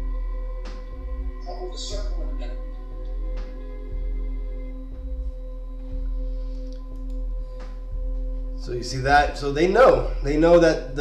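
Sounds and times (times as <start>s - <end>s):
drone of held tones: 0.0s - 11.0s
low hum: 0.0s - 11.0s.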